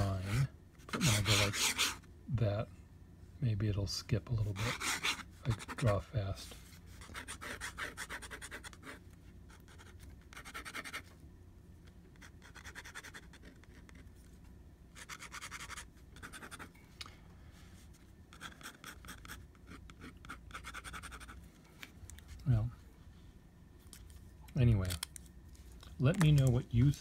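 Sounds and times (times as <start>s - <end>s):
pen nib scratching paper: 7.0s - 11.1s, 12.1s - 14.1s, 15.0s - 16.7s, 18.3s - 21.4s.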